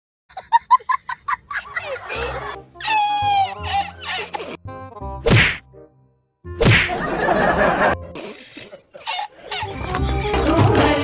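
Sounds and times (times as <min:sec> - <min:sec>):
hand slapping a back: 0:05.2 - 0:05.6, 0:06.6 - 0:07.0.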